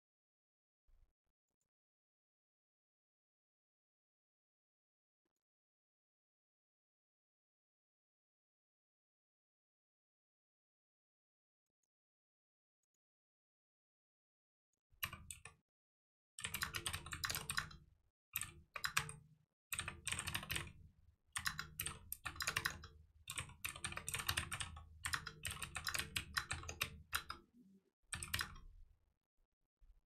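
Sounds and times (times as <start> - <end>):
computer keyboard typing: 16.4 - 17.8, 18.4 - 20.8, 21.4 - 27.5, 28.1 - 28.7.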